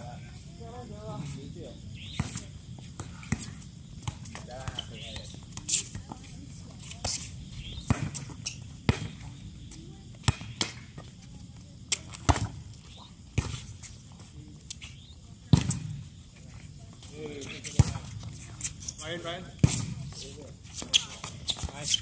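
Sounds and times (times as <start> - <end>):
volleyball slaps and knocks: 7.8 - 8.3, 19.6 - 20.0.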